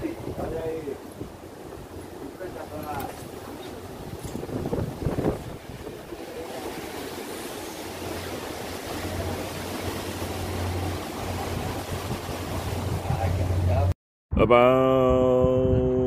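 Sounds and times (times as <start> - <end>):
wind gusts on microphone: 0.0 - 13.9
boat engine hum: 0.0 - 14.0
wind and water rushing past: 0.0 - 14.0.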